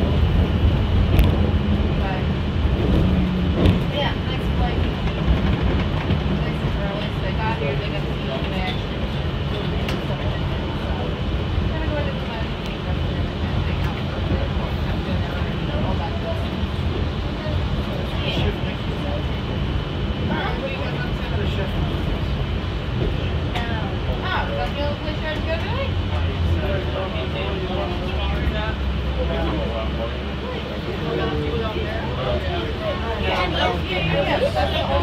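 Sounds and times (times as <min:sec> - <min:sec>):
monorail running rumble: 0:00.0 - 0:35.0
passengers' voices: 0:00.0 - 0:35.0.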